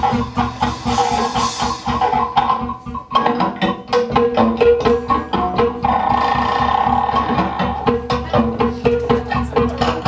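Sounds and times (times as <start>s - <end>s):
hand drum: 0.0s - 10.0s
plucked strings: 0.0s - 10.0s.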